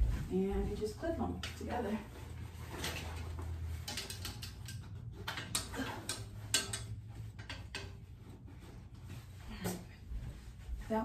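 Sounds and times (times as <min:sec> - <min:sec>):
hanger clips clicking: 0:03.8 - 0:08.0.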